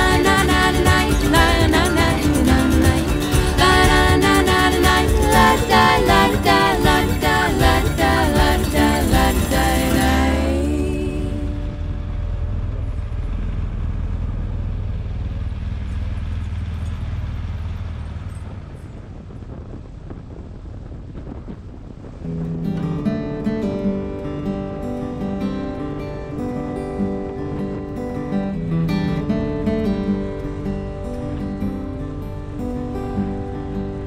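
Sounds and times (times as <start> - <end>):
strummed acoustic guitar music: 0.0 - 12.4, 22.3 - 34.0
motorcycle engine rumble: 0.0 - 22.6
wind: 0.0 - 34.0.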